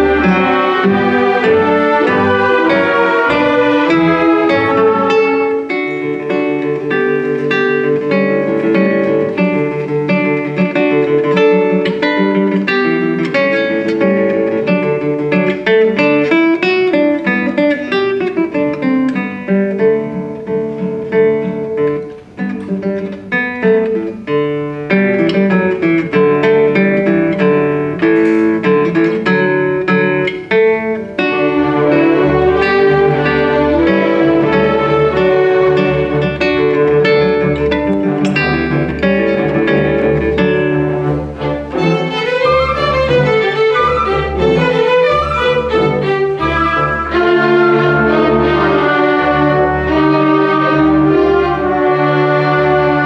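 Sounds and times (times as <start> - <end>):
classical guitar playing: 0.0 - 53.0.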